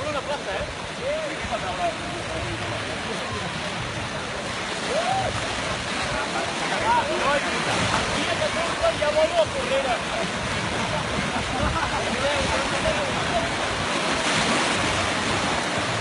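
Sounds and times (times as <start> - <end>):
people shouting and chattering: 0.0 - 16.0
surf washing onto beach: 0.0 - 16.0.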